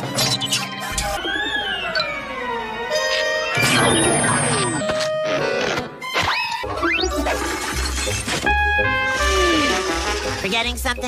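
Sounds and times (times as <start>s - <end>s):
cartoon music: 0.2s - 11.0s.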